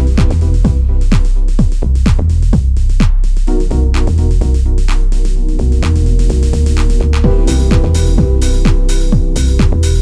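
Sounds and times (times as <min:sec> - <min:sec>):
hi-hats: 0:00.0 - 0:10.0
kick drum beat: 0:00.0 - 0:10.0
steady bass: 0:00.0 - 0:10.0
held synth chord: 0:06.3 - 0:10.0.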